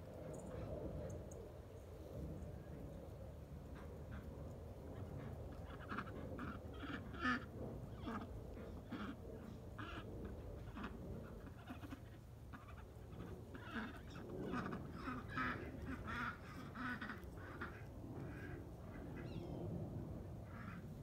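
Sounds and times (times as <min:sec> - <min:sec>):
steady low rumble: 0:00.0 - 0:21.0
birds quacking: 0:03.7 - 0:19.6, 0:20.4 - 0:21.0.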